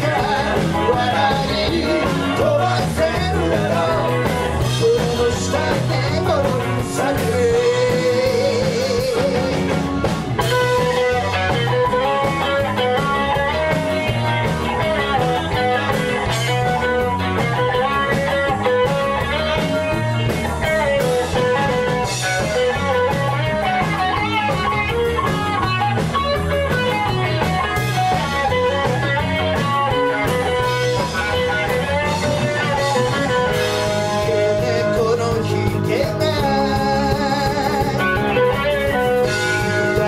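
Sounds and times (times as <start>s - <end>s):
bass guitar: 0.0s - 40.0s
drums: 0.0s - 40.0s
electric guitar melody: 0.0s - 40.0s.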